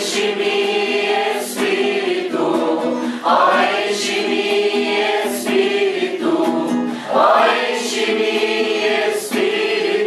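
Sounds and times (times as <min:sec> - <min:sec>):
acoustic guitar: 0:00.0 - 0:10.0
group singing worship song: 0:00.0 - 0:10.0.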